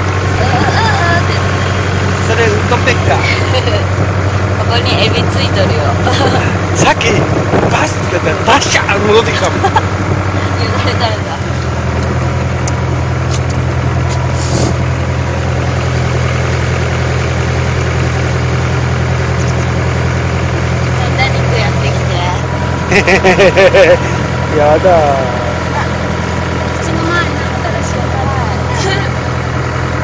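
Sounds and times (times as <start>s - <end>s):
boat motor droning: 0.0s - 30.0s.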